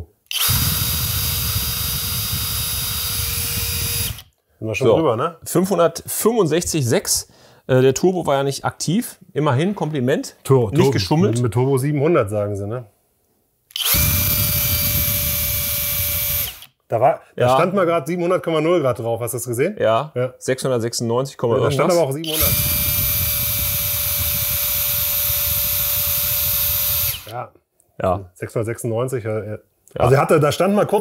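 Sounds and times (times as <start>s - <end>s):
cordless drill whining: 0.3s - 4.4s, 13.7s - 16.7s, 22.2s - 27.4s.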